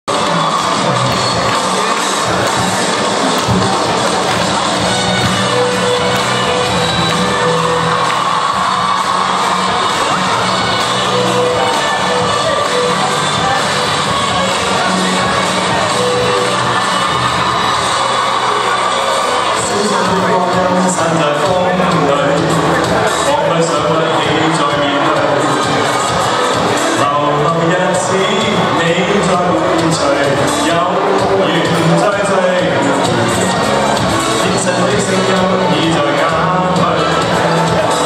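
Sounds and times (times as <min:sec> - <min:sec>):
crowd cheering: 0:00.0 - 0:38.0
crowd noise: 0:00.0 - 0:38.0
music playing: 0:00.0 - 0:38.0.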